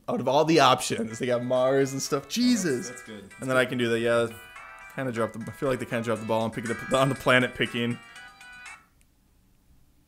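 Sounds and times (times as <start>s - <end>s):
phone ringtone: 1.0s - 8.9s.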